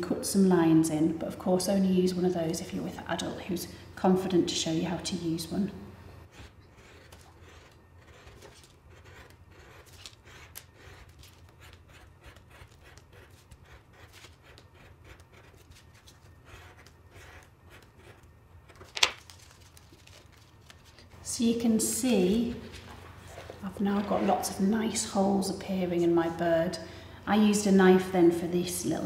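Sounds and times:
craft knife scratching card: 6.3 - 19.1.

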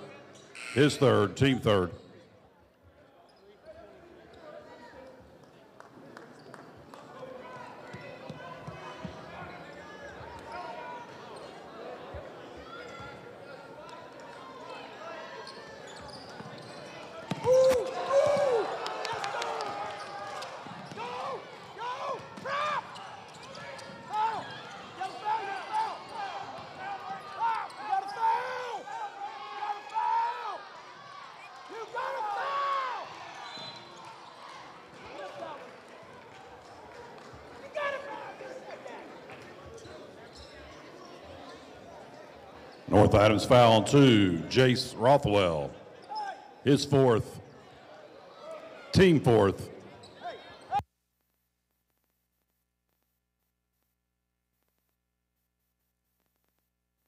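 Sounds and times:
crowd chatter: 0.0 - 50.8.

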